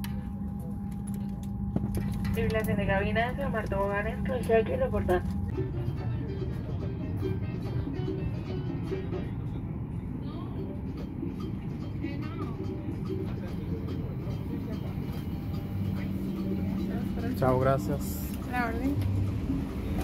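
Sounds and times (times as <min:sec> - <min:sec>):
aircraft cabin hum: 0:00.0 - 0:20.0
faint passenger voices: 0:00.0 - 0:20.0.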